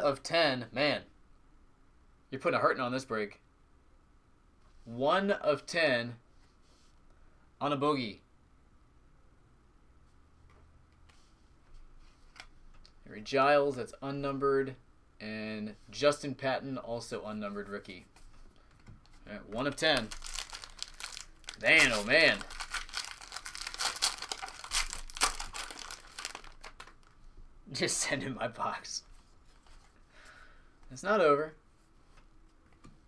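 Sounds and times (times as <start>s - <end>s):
trading cards being shuffled: 19.1s - 27.2s.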